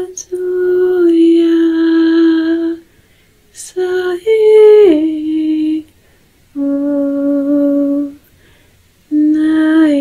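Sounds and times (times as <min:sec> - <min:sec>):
person humming a lullaby: 0:00.0 - 0:02.8, 0:06.6 - 0:08.2, 0:09.1 - 0:10.0.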